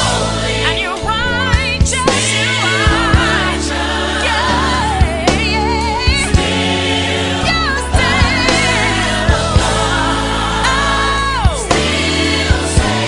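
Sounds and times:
gospel lead vocal with vibrato: 0:00.0 - 0:13.0
sustained chords and bass: 0:00.0 - 0:13.0.

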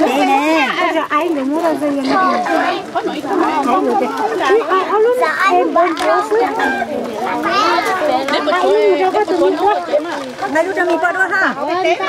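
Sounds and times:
children talking and calling out: 0:00.0 - 0:12.0.

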